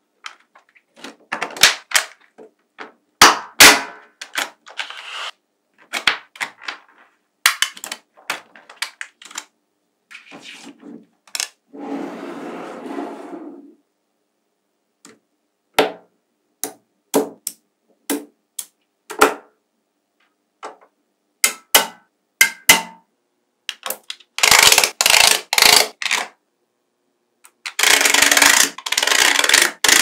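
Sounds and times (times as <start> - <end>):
balls clicking and rattling: 27.5 - 30.0.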